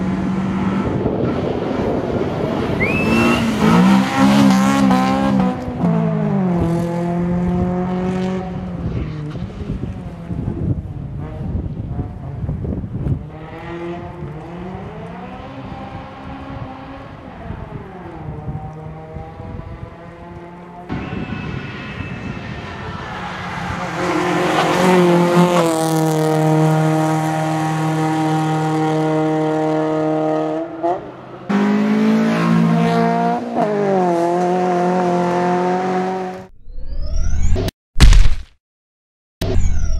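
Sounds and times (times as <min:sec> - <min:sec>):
rally car engine revving: 0:00.0 - 0:21.0, 0:22.8 - 0:36.5.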